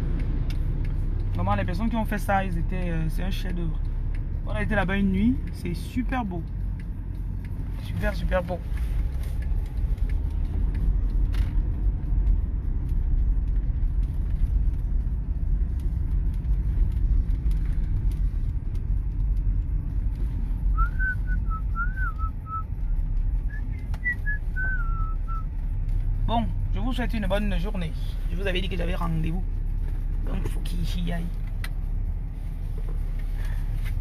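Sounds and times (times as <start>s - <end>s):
car cabin rumble: 0.0s - 34.0s
person whistling: 20.7s - 22.6s, 23.5s - 25.5s.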